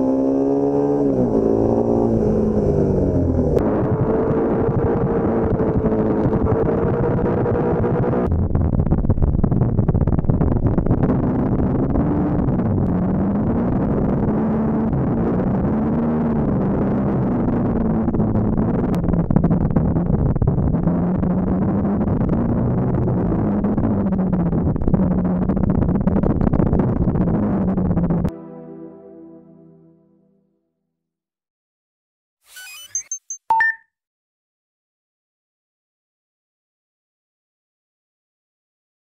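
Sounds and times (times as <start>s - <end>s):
motorcycle engine revving: 0.0s - 8.3s.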